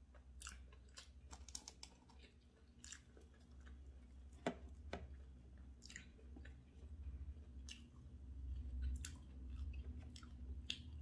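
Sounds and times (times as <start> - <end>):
chewing food: 0.0 - 11.0
steady low hum: 0.0 - 11.0.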